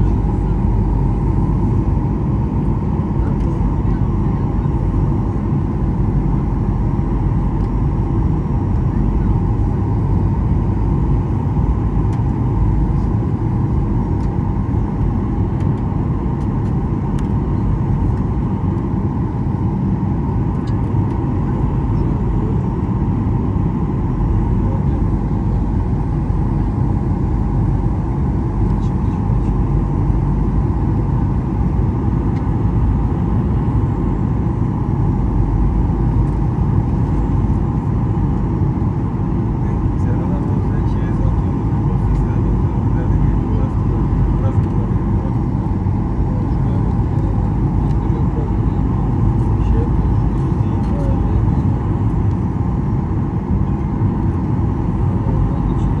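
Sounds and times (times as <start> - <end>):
airliner engine and airflow rumble: 0.0 - 56.0.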